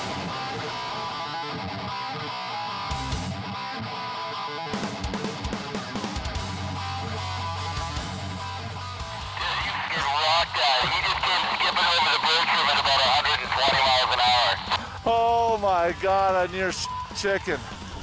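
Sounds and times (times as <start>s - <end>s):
guitar music: 0.0s - 15.1s.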